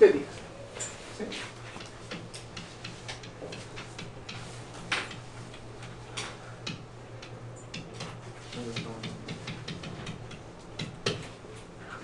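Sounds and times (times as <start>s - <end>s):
stylus tapping and scraping on tablet: 1.4s - 6.8s, 7.7s - 11.4s.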